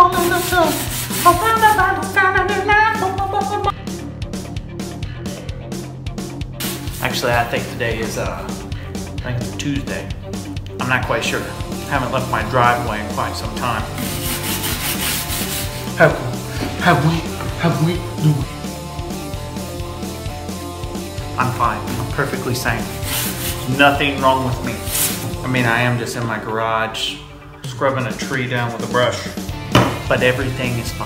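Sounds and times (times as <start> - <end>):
background music with melody: 0.0 - 31.0
brush scrubbing bark: 0.1 - 1.7, 13.8 - 16.0, 22.6 - 24.0, 24.7 - 25.4.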